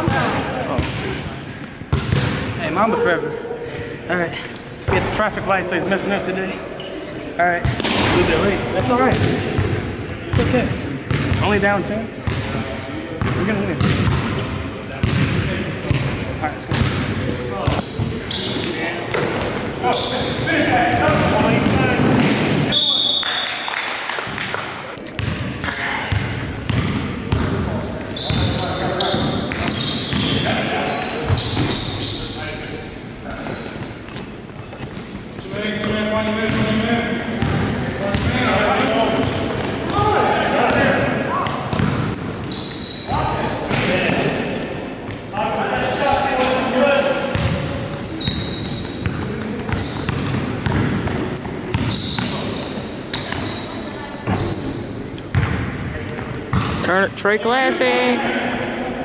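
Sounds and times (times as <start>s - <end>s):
players' voices echoing: 0.0s - 59.0s
basketball bouncing on wooden floor: 49.1s - 51.9s.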